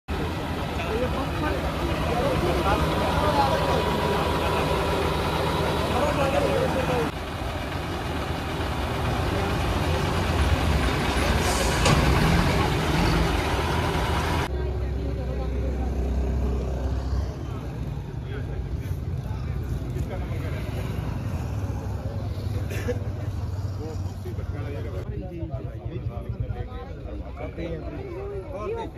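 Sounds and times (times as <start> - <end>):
people talking: 0.1 - 7.2, 9.1 - 13.1
vehicle engine running: 0.1 - 25.0.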